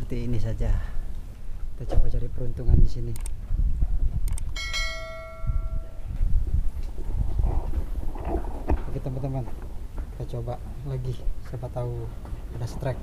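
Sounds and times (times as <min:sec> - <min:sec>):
low microphone rumble: 0:00.0 - 0:13.0
sharp metallic knocks: 0:04.6 - 0:06.0
struck metal object ringing: 0:04.6 - 0:06.1.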